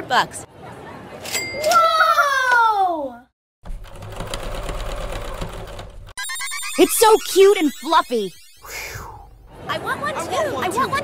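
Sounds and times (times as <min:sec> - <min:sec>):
person speaking: 0:06.6 - 0:08.9.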